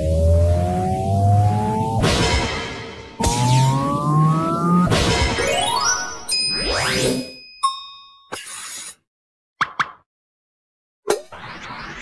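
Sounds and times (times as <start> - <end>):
electronic rising tones and sweeps: 0.0 - 7.3.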